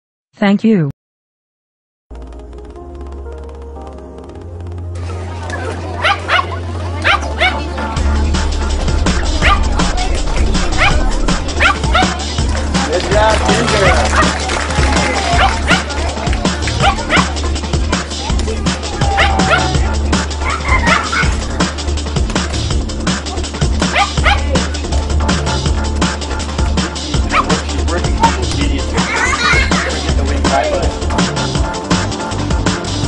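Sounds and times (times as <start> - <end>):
small dog barking and yipping: 6.0 - 7.6, 16.8 - 17.3, 19.0 - 19.8, 20.4 - 21.4, 23.9 - 24.4
music with heavy bass beat: 8.0 - 33.0.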